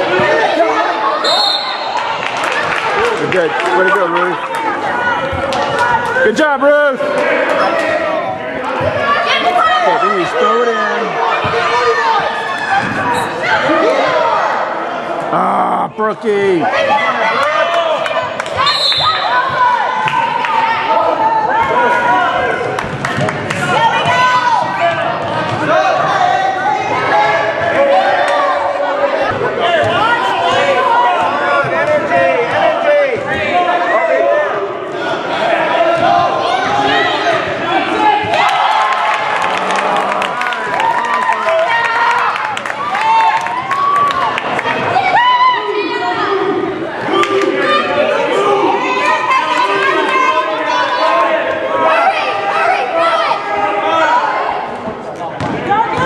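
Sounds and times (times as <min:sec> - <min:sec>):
voices talking and calling out: 0:00.0 - 0:40.4.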